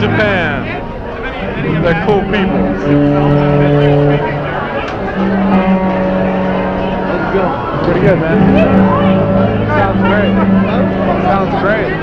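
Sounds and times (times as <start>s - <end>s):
garage punk band long held notes: 0.0s - 12.0s.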